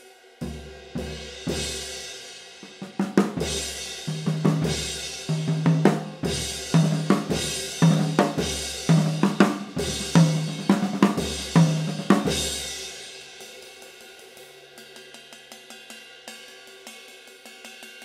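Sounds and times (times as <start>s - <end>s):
cymbals washing: 0.0s - 18.0s
ringing tom notes: 2.8s - 12.8s.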